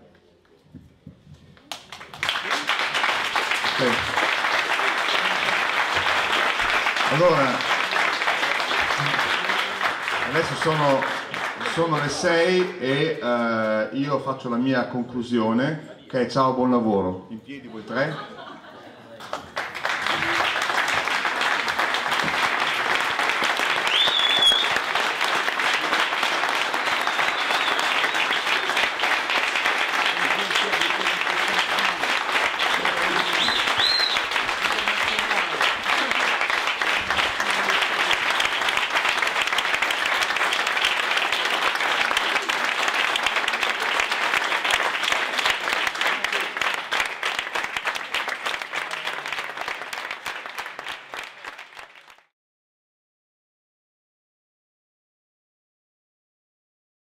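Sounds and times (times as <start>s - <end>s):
audience applauding: 1.6s - 12.9s, 19.2s - 52.3s
short high whistles: 23.8s - 24.8s, 26.9s - 28.6s, 33.4s - 34.3s.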